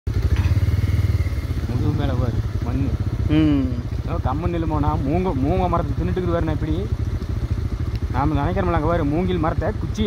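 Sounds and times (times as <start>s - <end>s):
vehicle engine idling: 0.1s - 10.0s.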